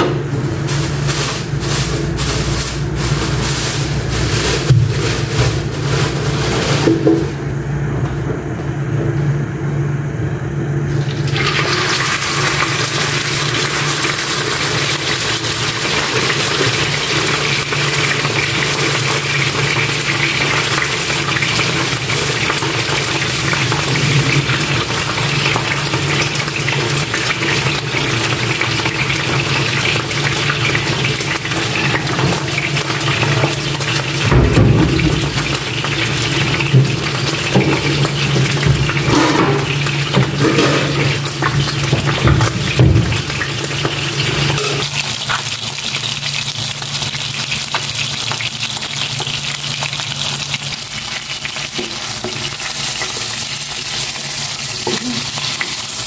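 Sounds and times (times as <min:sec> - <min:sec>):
fish sizzling in hot oil: 0:00.4 - 0:06.8, 0:10.9 - 0:56.0.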